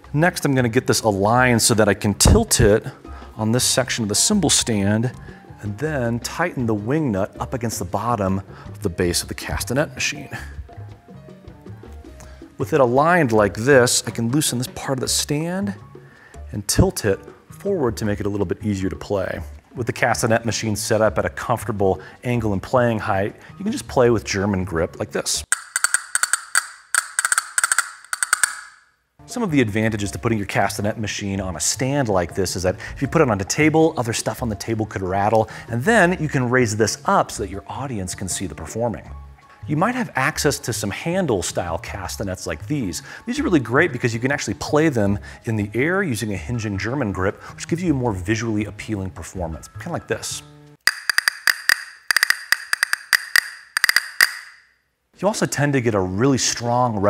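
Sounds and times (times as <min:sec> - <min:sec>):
castanet clicks: 0:25.5 - 0:28.9, 0:50.9 - 0:54.7.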